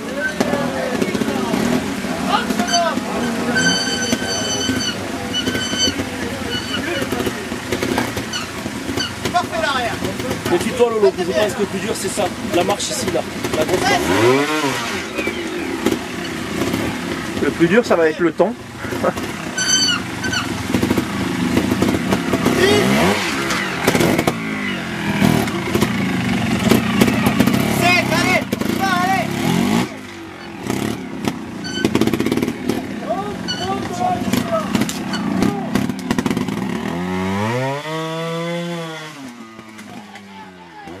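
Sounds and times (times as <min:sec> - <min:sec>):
people talking and laughing: 0:00.0 - 0:36.8, 0:39.4 - 0:41.0
motorcycle engine revving: 0:00.0 - 0:41.0.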